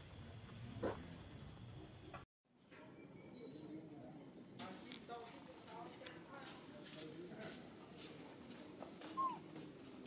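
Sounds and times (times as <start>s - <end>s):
young monkey high-pitched call: 9.1s - 9.5s.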